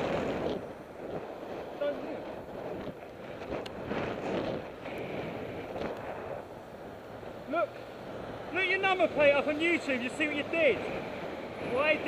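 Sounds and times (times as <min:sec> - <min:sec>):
wind on microphone: 0:00.0 - 0:09.2.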